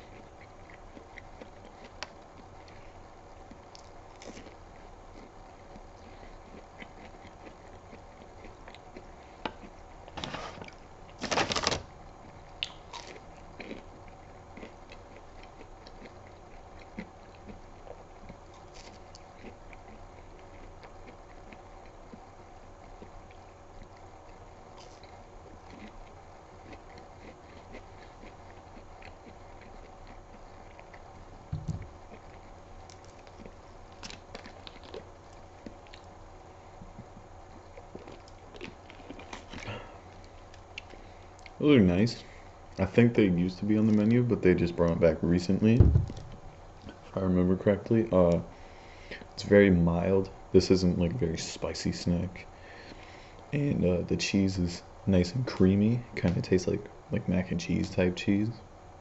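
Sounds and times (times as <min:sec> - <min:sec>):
chewing and mouth sounds: 0:00.0 - 0:10.9, 0:12.2 - 0:36.2, 0:36.8 - 0:41.6
low room hum: 0:00.0 - 0:59.0
dull bump: 0:45.8 - 0:46.4.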